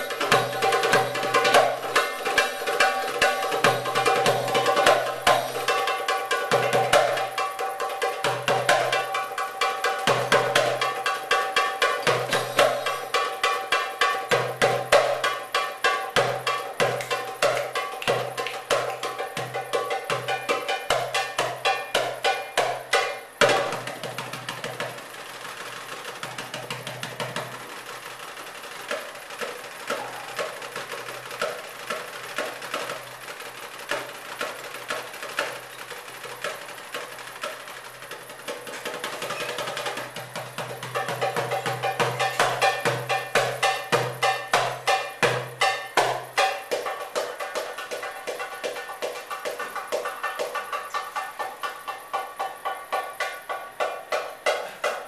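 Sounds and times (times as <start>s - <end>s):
hand drum rhythm: 0.0s - 55.0s.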